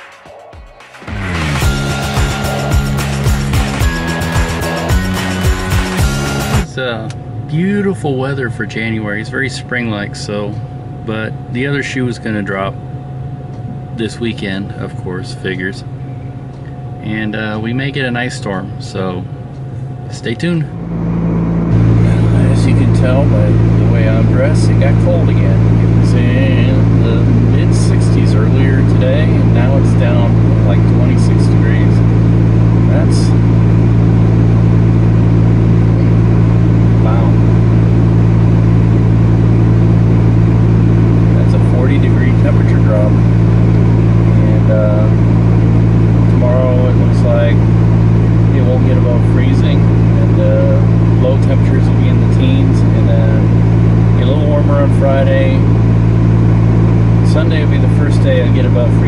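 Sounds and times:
man talking: 0:00.2 - 0:00.8, 0:02.0 - 0:05.2, 0:06.6 - 0:12.8, 0:13.7 - 0:15.9, 0:17.0 - 0:19.3, 0:20.1 - 0:20.8, 0:21.8 - 0:32.1, 0:32.8 - 0:33.5, 0:36.7 - 0:37.6, 0:41.3 - 0:43.4, 0:44.2 - 0:45.3, 0:46.2 - 0:47.7, 0:48.4 - 0:55.8, 0:57.2 - 0:59.0
car engine idling: 0:00.4 - 0:06.9, 0:12.4 - 0:59.0.

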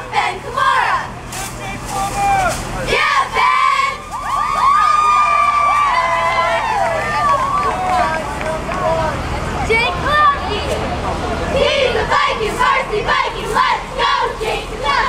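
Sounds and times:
cheerleaders yelling and cheering: 0:00.0 - 0:15.0.

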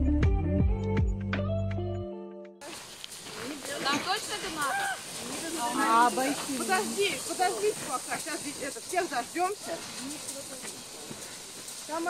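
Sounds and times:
distant people talking: 0:02.6 - 0:12.0
steady high hiss: 0:02.6 - 0:12.0.

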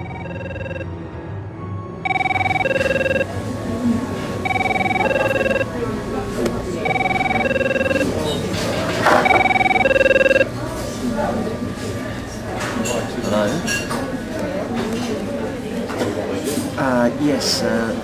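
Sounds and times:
two-note phone ringtone: 0:00.0 - 0:00.9, 0:02.0 - 0:03.4, 0:04.4 - 0:05.8, 0:06.8 - 0:08.2, 0:09.2 - 0:10.5.

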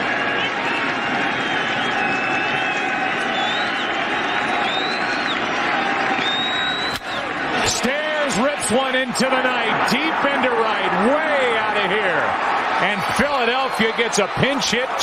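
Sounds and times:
stadium crowd noise: 0:00.0 - 0:15.0.

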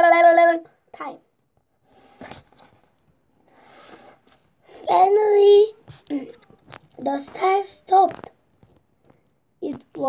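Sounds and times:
child breathing: 0:03.4 - 0:04.8.

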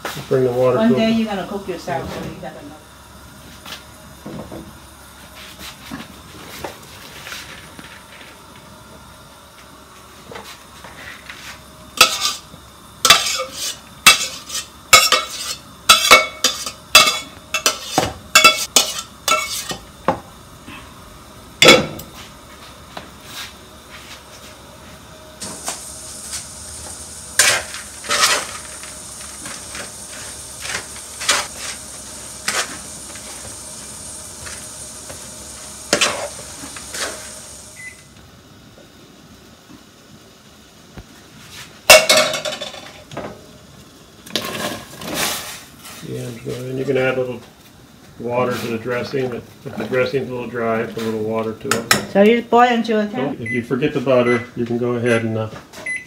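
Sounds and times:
steady high hiss: 0:00.0 - 0:55.5.

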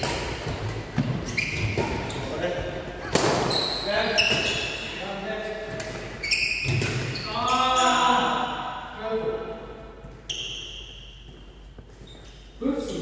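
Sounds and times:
racket striking shuttlecock: 0:00.0 - 0:02.1, 0:03.0 - 0:03.6
shoes squeaking on wooden floor: 0:00.9 - 0:05.0, 0:06.1 - 0:08.1, 0:10.0 - 0:12.6.

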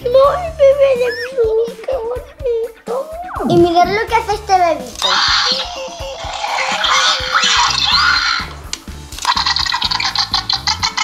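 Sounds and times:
background music: 0:00.0 - 0:11.0
toy dinosaur screeching calls: 0:05.0 - 0:08.6, 0:09.2 - 0:11.0.

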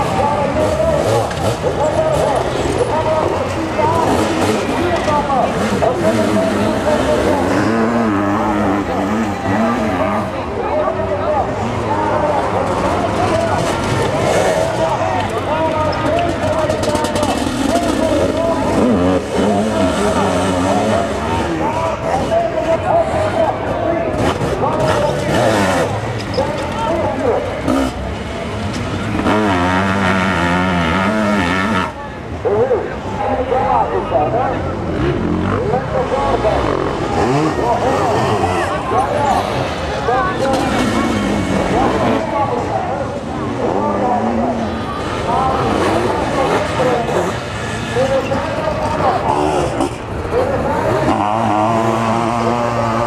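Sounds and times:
motorcycle engines revving: 0:00.0 - 0:53.0.

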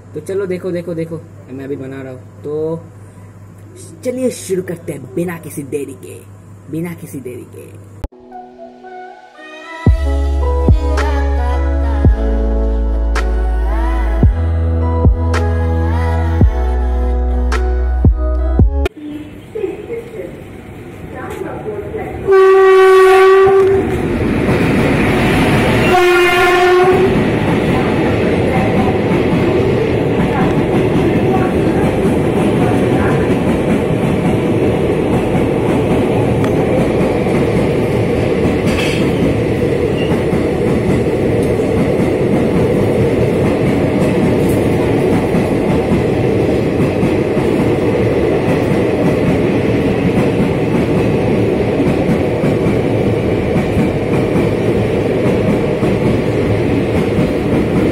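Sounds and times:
train horn blasts: 0:22.3 - 0:23.9, 0:25.8 - 0:27.2
train wheels on rails: 0:23.4 - 0:57.9.

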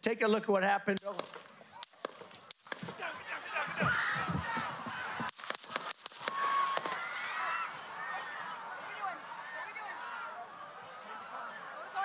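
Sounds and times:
crowd screaming and shouting: 0:02.8 - 0:12.0.

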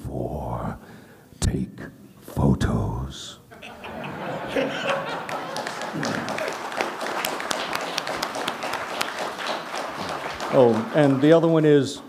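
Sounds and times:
applause: 0:04.8 - 0:12.0.

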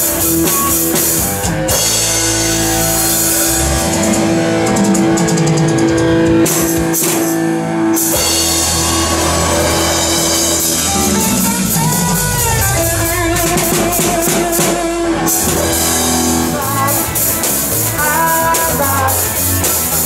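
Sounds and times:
rock band playing: 0:00.0 - 0:20.0.

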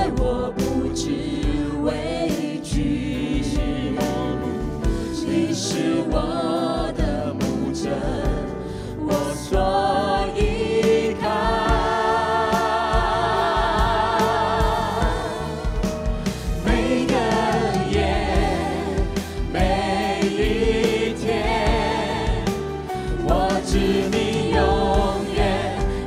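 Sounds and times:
instrumental accompaniment: 0:00.0 - 0:26.0
men and women singing: 0:00.0 - 0:26.0.

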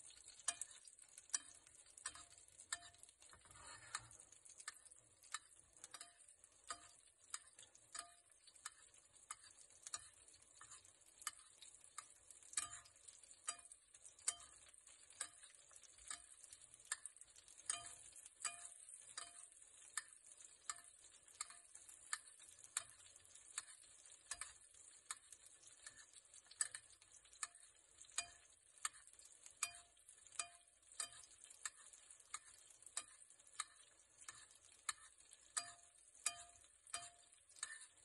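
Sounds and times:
butter sizzling: 0:00.0 - 0:38.0
metal spoon scraping frying pan: 0:00.2 - 0:38.0.

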